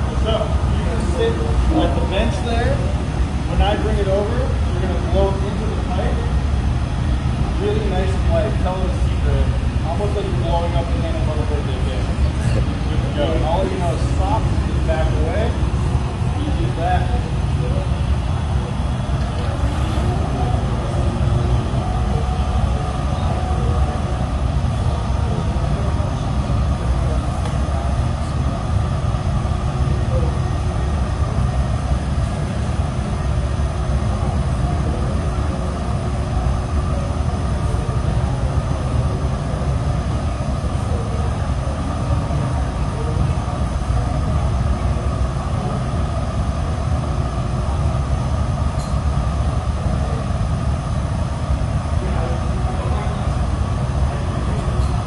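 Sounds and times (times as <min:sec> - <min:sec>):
gas furnace roaring: 0:00.0 - 0:55.0.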